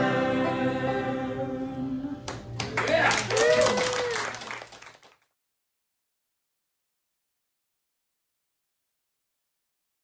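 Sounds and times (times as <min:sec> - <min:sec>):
folk chorus singing: 0:00.0 - 0:02.3
audience applause: 0:02.6 - 0:05.3.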